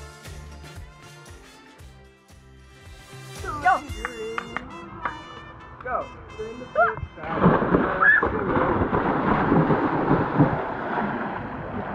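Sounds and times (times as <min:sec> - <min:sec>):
churning water rushing: 0:06.9 - 0:11.9
splash into pool: 0:07.4 - 0:11.9.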